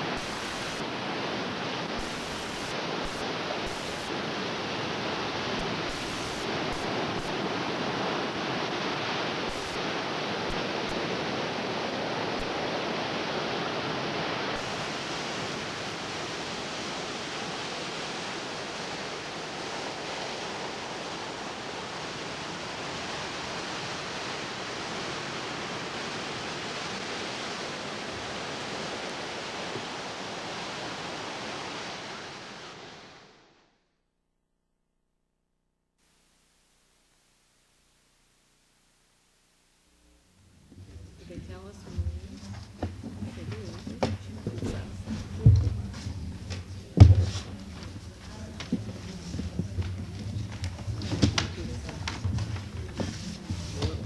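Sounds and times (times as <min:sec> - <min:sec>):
ocean surf rushing: 0:00.0 - 0:33.6, 0:40.9 - 0:54.0.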